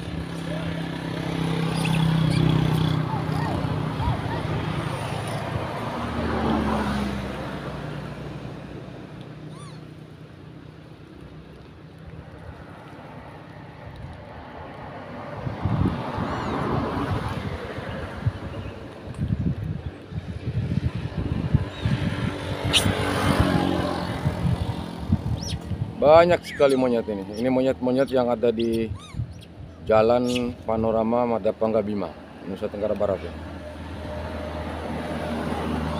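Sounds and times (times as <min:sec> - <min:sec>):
car passing: 0:00.0 - 0:10.4, 0:12.2 - 0:19.1, 0:20.2 - 0:28.8, 0:29.5 - 0:35.9
vehicles passing: 0:00.0 - 0:35.9.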